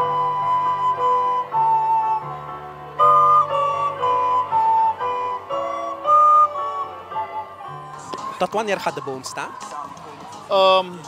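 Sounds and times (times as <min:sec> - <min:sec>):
recorder playing slow melody: 0:00.0 - 0:08.3.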